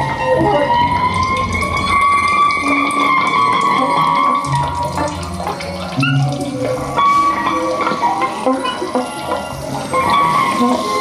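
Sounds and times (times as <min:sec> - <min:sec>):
long held bending tone: 0:00.0 - 0:11.0.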